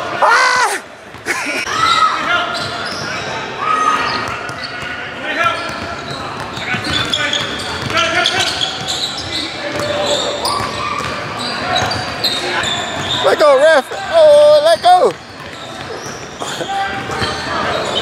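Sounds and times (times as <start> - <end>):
players' voices: 0.0 - 18.0
basketball bouncing on hardwood: 6.4 - 8.0.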